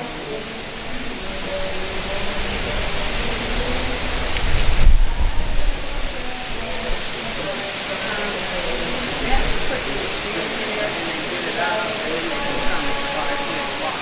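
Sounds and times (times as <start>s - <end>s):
wind on microphone: 0.0s - 11.3s
distant voice speaking: 6.2s - 14.0s.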